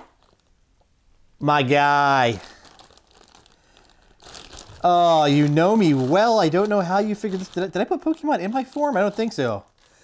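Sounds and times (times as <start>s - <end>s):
plastic bag crinkling: 0.0s - 0.6s, 1.8s - 10.0s.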